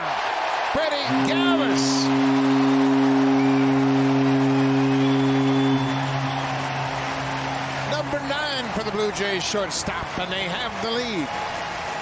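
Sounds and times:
crowd cheering: 0:00.0 - 0:12.0
stadium horn low blast: 0:00.8 - 0:09.7.

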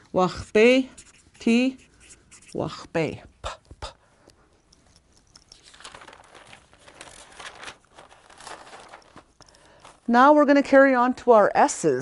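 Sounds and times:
faint rustling and crinkling: 0:04.2 - 0:10.3.

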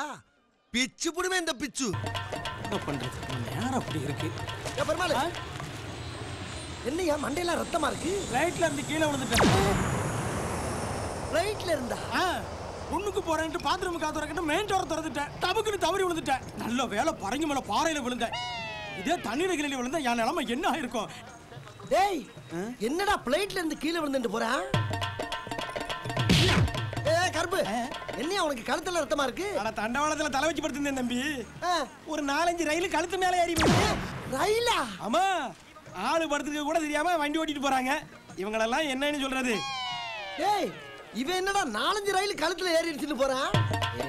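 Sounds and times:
men talking: 0:00.8 - 0:05.5, 0:06.8 - 0:10.0, 0:11.2 - 0:24.8, 0:26.4 - 0:44.0
high drawn-out cry: 0:18.3 - 0:19.3, 0:39.6 - 0:41.0.

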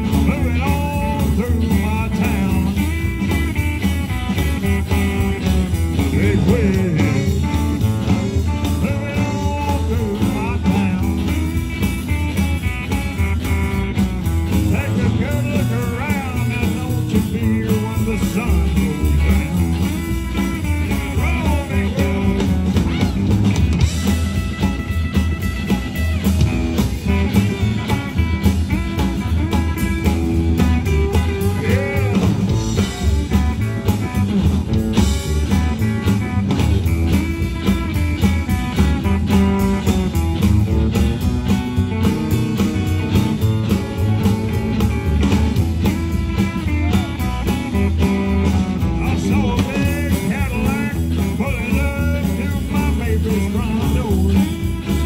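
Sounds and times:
bent lead guitar notes: 0:00.0 - 0:55.0
rockabilly band playing: 0:00.0 - 0:55.0.

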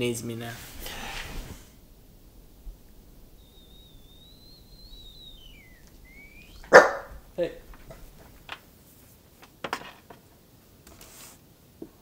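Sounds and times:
small dog whining: 0:02.9 - 0:08.2
dog barking sharply: 0:06.6 - 0:07.2.

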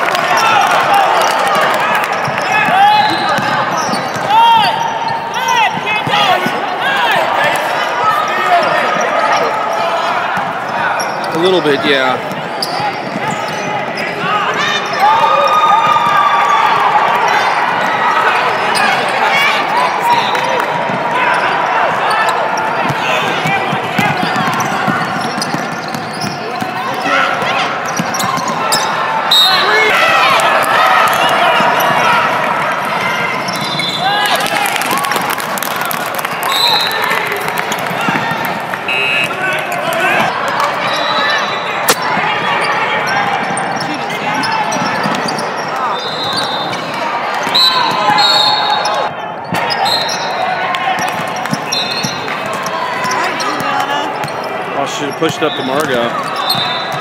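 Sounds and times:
players and spectators calling out: 0:00.0 - 0:57.0
sneakers squeaking: 0:00.1 - 0:34.8, 0:35.6 - 0:57.0
ball bouncing on hardwood court: 0:02.2 - 0:04.7, 0:22.8 - 0:28.6.

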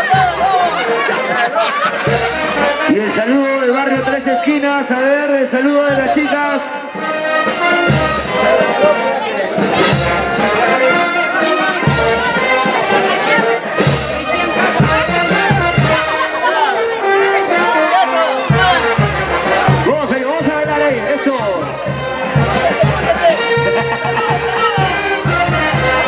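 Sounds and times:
brass band playing dance tune: 0:00.0 - 0:26.0
crowd voices: 0:00.0 - 0:26.0.

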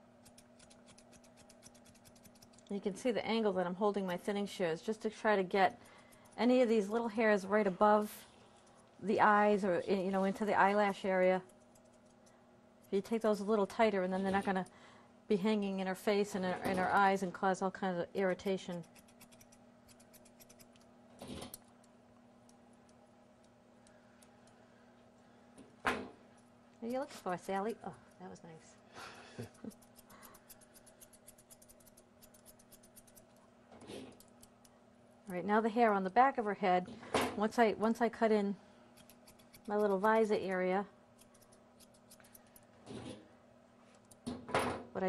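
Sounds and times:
shears snipping fur: 0:00.2 - 0:02.8, 0:12.8 - 0:14.7, 0:18.2 - 0:21.6, 0:29.4 - 0:33.4, 0:39.0 - 0:42.7.

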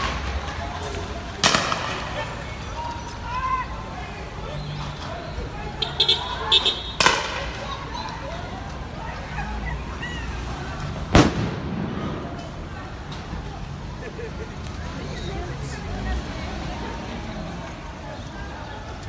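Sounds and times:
distant shouting voices: 0:00.0 - 0:19.0
street traffic: 0:00.0 - 0:19.0
loud bangs: 0:01.4 - 0:02.3, 0:11.1 - 0:13.3
low rumbling echo: 0:11.1 - 0:12.8.

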